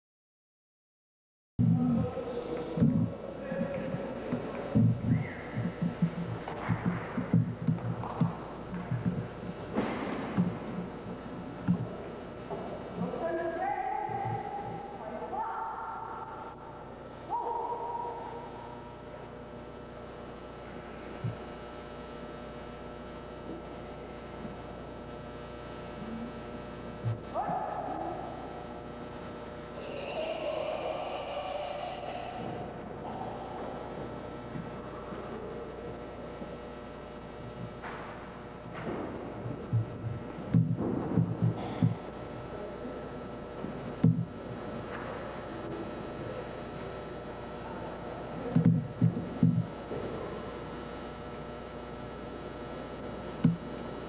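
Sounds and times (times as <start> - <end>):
low steady hum: 1.6 - 54.0
person calling out: 29.8 - 33.8.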